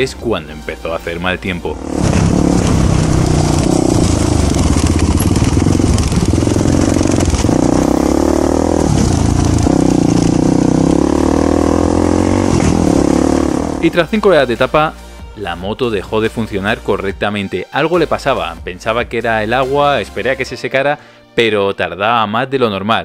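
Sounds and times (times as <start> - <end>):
motorcycle engine revving: 1.5 - 14.1.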